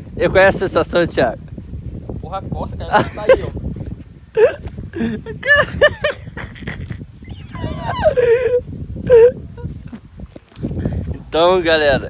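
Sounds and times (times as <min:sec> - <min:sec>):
man wailing: 0:07.3 - 0:09.4.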